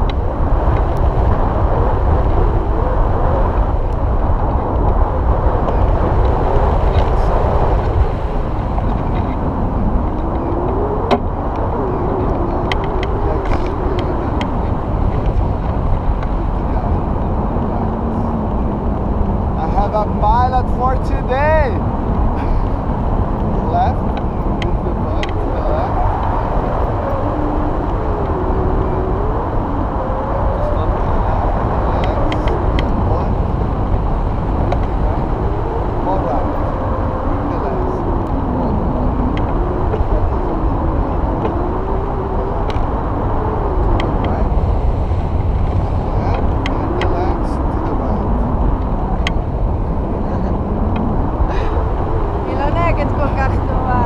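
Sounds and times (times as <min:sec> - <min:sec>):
wind rushing over microphone: 0:00.0 - 0:54.0
faint muffled voices: 0:19.6 - 0:26.8, 0:30.5 - 0:33.5, 0:37.4 - 0:42.7, 0:43.8 - 0:44.9, 0:45.7 - 0:54.0.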